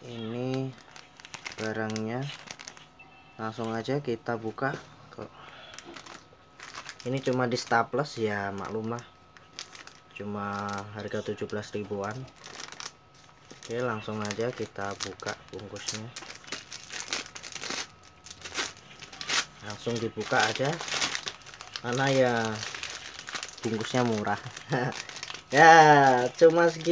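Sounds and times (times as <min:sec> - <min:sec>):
plastic package crinkling: 0:00.0 - 0:02.9, 0:05.4 - 0:26.9.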